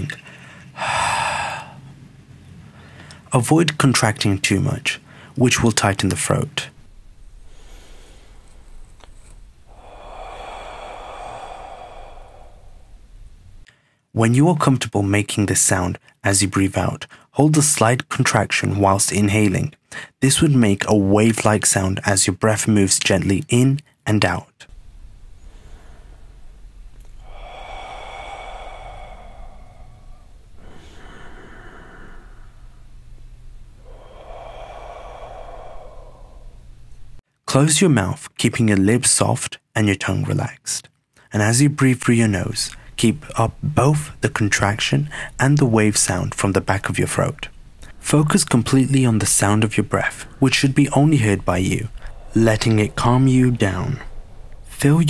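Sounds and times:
hissy whispered exhale: 0.2s - 1.9s, 6.7s - 13.9s, 24.7s - 37.2s, 45.0s - 45.4s, 47.4s - 55.0s
soft breath in through nose: 0.2s - 1.9s, 2.6s - 3.3s, 6.8s - 14.1s, 24.7s - 37.2s, 45.0s - 45.4s, 51.8s - 54.8s
steady low hum: 4.3s - 13.7s, 24.7s - 37.2s, 42.2s - 55.0s.

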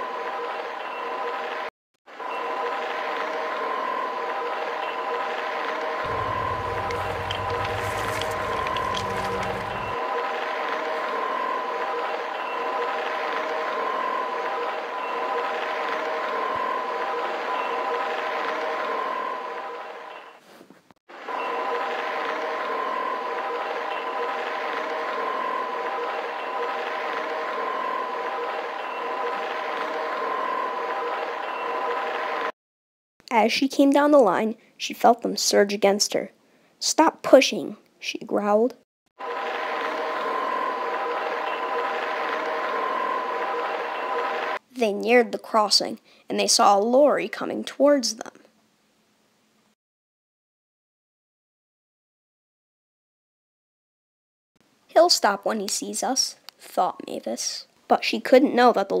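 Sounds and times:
diesel locomotive engine running: 6.1s - 10.0s
low rumble: 6.1s - 10.0s.

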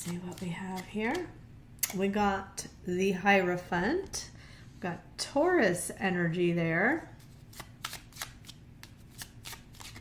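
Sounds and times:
cards being shuffled: 0.0s - 1.4s, 7.2s - 10.0s.

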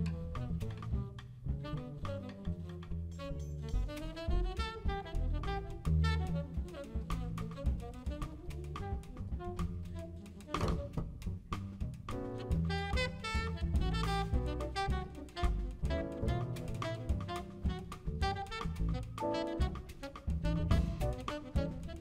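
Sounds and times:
drum kit and cymbals: 0.0s - 22.0s
walking double bass: 0.0s - 22.0s
saxophone melody: 1.6s - 11.0s, 12.4s - 22.0s.

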